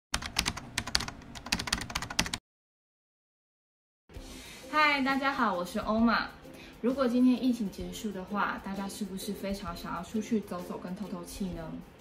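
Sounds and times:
computer keyboard typing: 0:00.1 - 0:02.4.

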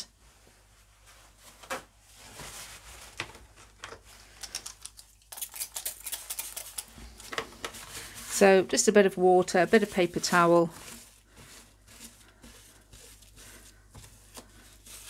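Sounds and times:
paper towel rustling: 0:00.2 - 0:04.4, 0:07.0 - 0:15.0.

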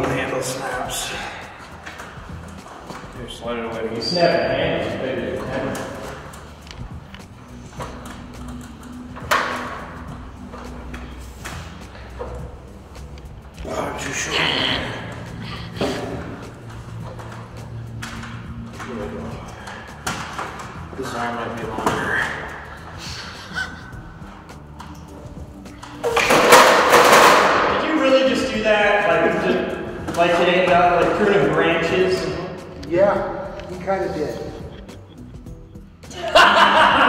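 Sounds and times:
people whooping and laughing: 0:36.1 - 0:37.0.

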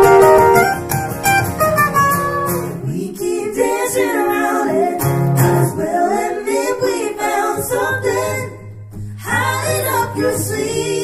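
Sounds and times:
acoustic guitars: 0:00.0 - 0:11.0
voices singing in harmony: 0:02.7 - 0:11.0.

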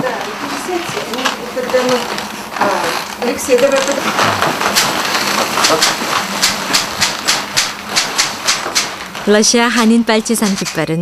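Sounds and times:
cloth banner rustling: 0:00.0 - 0:11.0.

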